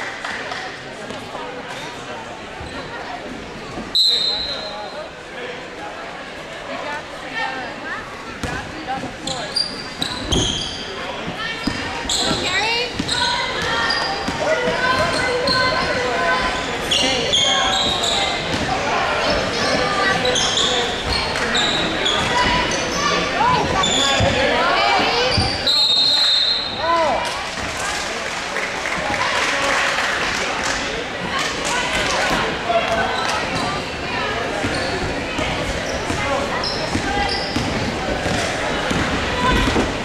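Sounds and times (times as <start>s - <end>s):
sneakers squeaking: 2.6s - 3.1s, 3.7s - 4.9s, 8.4s - 27.0s, 31.3s - 40.0s.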